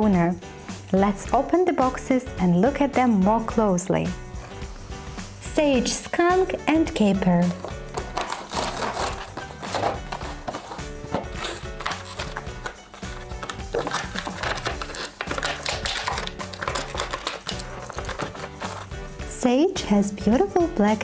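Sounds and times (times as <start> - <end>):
background music with repeating beat: 0.0 - 21.0
plastic packaging crinkling: 7.6 - 18.9.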